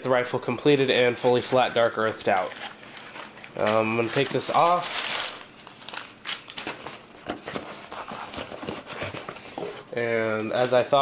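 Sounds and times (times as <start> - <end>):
packing paper crinkling: 0.8 - 9.6.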